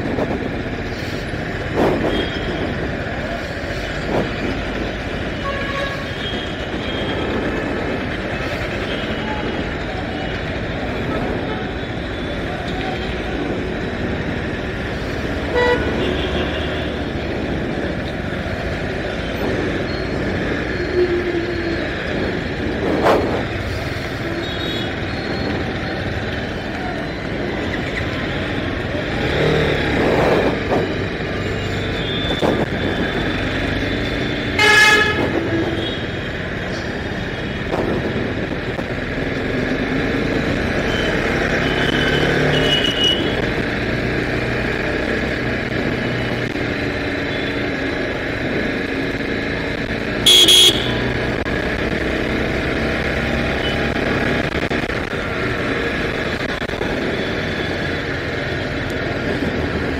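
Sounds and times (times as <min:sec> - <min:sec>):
road and wind noise: 0:00.0 - 0:59.9
vehicle horns honking: 0:05.4 - 0:07.1, 0:15.4 - 0:16.9, 0:34.4 - 0:36.0, 0:40.9 - 0:43.4, 0:50.2 - 0:51.1.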